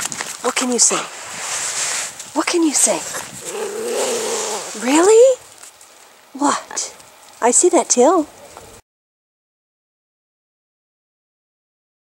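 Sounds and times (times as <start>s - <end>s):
puppy drawn-out vocal sound: 3.1s - 5.3s.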